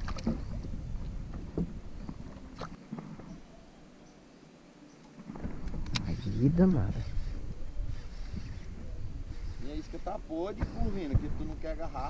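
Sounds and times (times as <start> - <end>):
wind rumble on microphone: 0.0 - 2.6, 5.3 - 12.0
faint water noise: 0.0 - 12.0.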